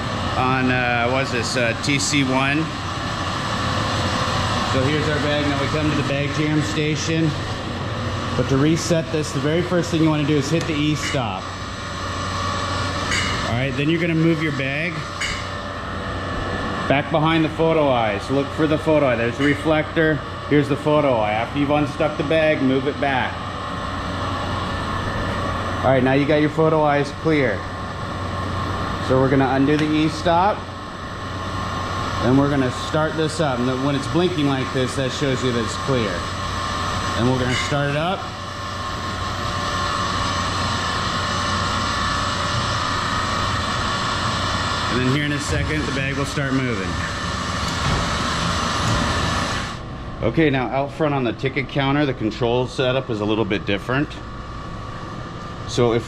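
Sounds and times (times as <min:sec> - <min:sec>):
machine hum and air noise: 0:00.0 - 0:56.0.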